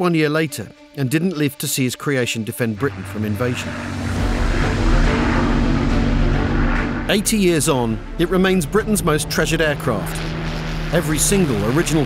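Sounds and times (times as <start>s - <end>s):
background music: 0.0s - 12.0s
piston aircraft engine droning: 2.7s - 12.0s.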